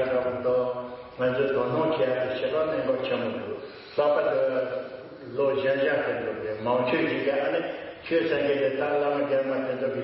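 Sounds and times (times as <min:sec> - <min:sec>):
man giving a talk: 0:00.0 - 0:10.0.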